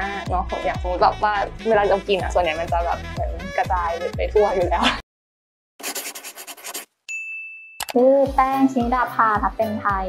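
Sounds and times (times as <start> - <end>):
scratchy pen-like strokes: 5.8 - 7.0
high ding: 7.1 - 8.0.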